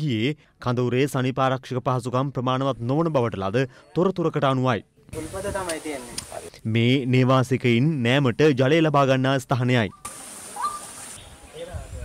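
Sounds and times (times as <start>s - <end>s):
water hissing from leaking pipe: 5.2s - 6.6s, 10.0s - 11.2s.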